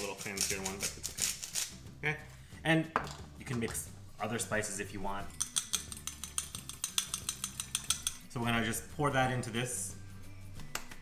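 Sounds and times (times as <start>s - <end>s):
fork clinking against glass: 5.3s - 8.3s.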